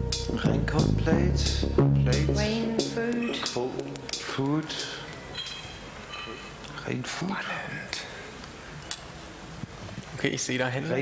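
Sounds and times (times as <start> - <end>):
steady hiss: 1.4 - 11.0.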